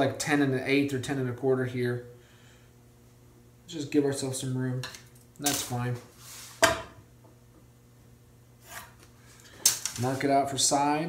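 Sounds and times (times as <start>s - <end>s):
rustle of hand tools: 5.5s - 6.6s, 8.6s - 10.4s
tools clattering: 9.5s - 10.2s.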